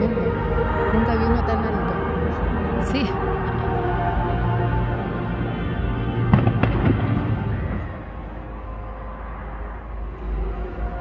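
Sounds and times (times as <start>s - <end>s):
far-off concert music: 0.0s - 11.0s
distant fireworks bangs and crackles: 6.3s - 8.2s.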